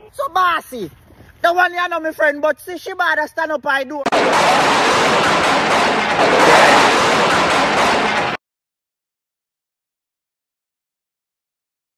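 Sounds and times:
rainstorm rushing: 4.1 - 8.4.

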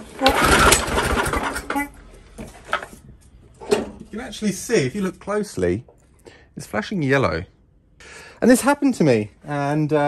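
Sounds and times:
lawn mower engine cranking: 0.0 - 1.8
recoil starter pull: 0.1 - 1.8.

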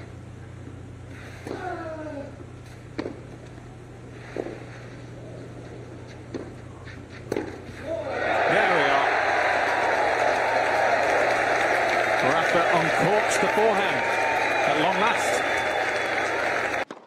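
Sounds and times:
racket hitting tennis ball: 6.1 - 7.9
crowd cheering and shouting: 7.9 - 16.8.

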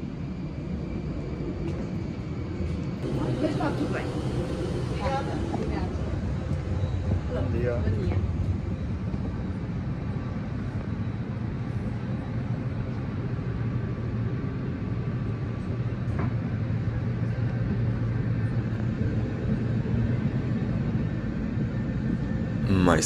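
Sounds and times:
aircraft cabin ventilation hum: 2.9 - 23.0.

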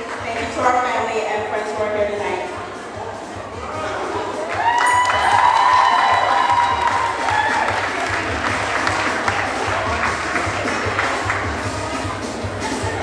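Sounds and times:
music playing: 0.0 - 13.0
audience applauding and cheering: 4.4 - 12.2.

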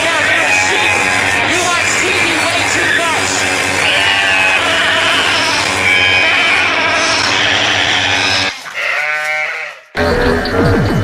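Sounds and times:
bleating: 0.0 - 1.8, 2.4 - 10.0.

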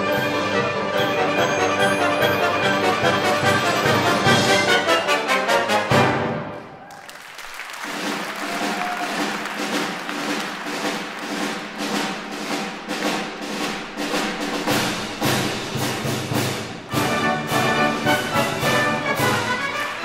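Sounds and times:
symphony orchestra playing: 0.0 - 6.8, 9.1 - 20.0
percussion beat: 7.4 - 20.0.

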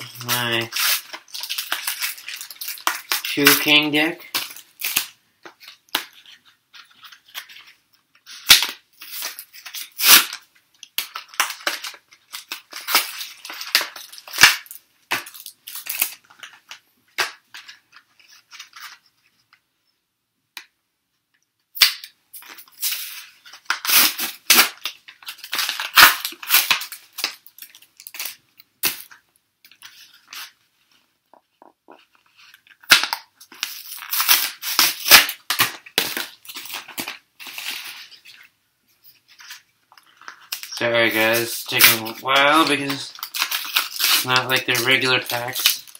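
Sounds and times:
foil wrappers crinkling and tearing: 0.0 - 19.0, 22.4 - 30.6, 32.0 - 38.5, 39.2 - 45.9.

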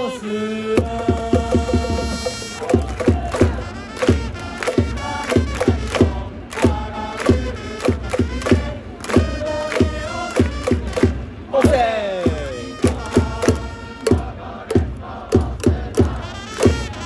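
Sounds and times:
trumpet melody: 0.0 - 6.3, 6.9 - 11.1, 12.4 - 14.6, 16.1 - 17.0
crowd chanting: 0.0 - 17.0
crowd clapping in time: 0.8 - 17.0
drum beating: 0.8 - 17.0.

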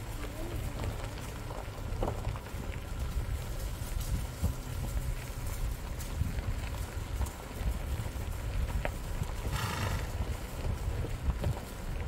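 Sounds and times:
low wind rumble on microphone: 0.0 - 12.0
horse vocalising: 9.4 - 10.3.

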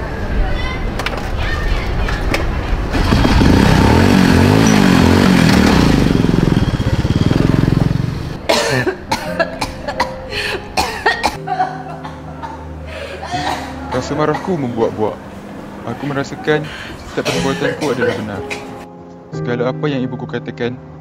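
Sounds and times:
motorcycle engine revving: 2.8 - 8.5.

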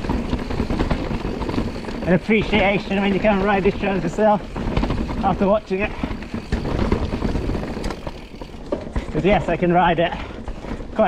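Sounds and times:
wind buffeting microphone: 0.0 - 9.4
bike knocks and rattles: 0.0 - 11.0
bike tyres on dirt and stones: 0.0 - 11.0.

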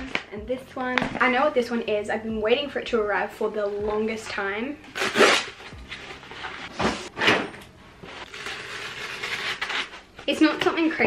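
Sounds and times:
cardboard tearing: 4.9 - 5.7, 8.2 - 10.1.

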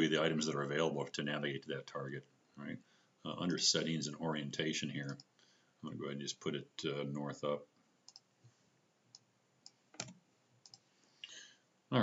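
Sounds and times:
computer mouse clicks: 8.1 - 8.3, 9.1 - 10.9.

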